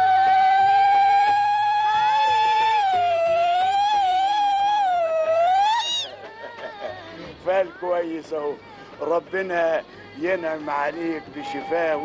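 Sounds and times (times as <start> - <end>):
woman ululating: 0.0 - 6.4.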